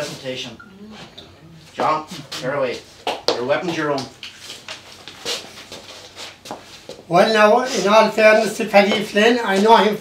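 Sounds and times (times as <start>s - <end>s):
feet shuffling on wooden floor: 1.7s - 7.1s.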